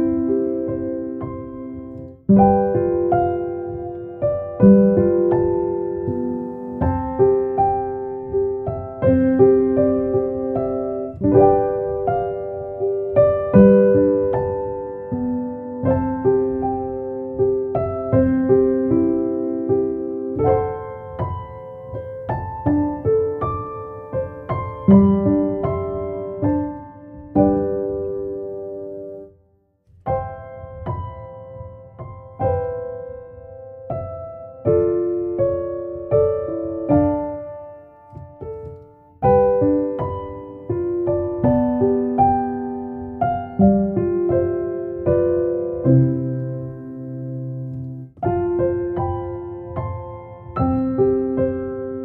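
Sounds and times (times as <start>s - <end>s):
slow soft solo piano: 0.0s - 52.0s.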